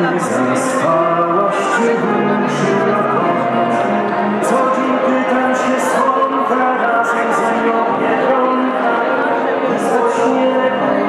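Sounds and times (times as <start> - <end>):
person singing live: 0.0 - 11.0.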